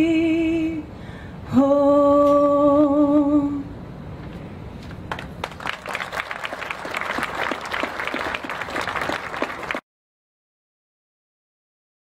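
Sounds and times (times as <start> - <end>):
crowd applauding: 5.1 - 9.8.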